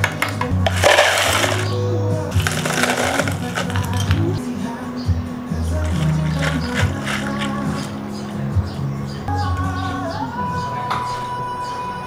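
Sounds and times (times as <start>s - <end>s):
background music: 0.0s - 12.0s
ice cubes poured into plastic cup: 0.6s - 4.2s, 5.8s - 7.9s.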